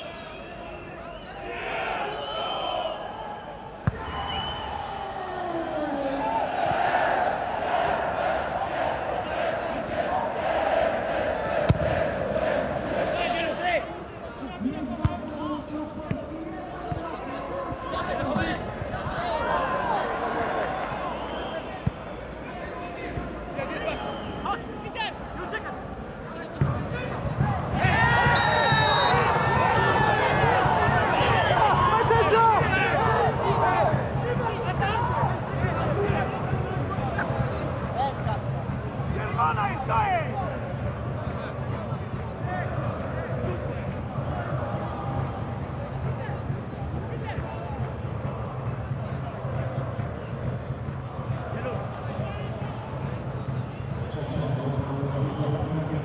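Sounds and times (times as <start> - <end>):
referee's whistle: 0.0 - 4.8, 21.2 - 21.8, 23.8 - 24.7, 28.2 - 29.4
crowd whistling: 0.0 - 5.0, 20.7 - 22.2, 23.6 - 24.8, 27.9 - 31.9
stadium crowd noise: 0.0 - 56.0
ball being kicked: 11.7 - 12.0.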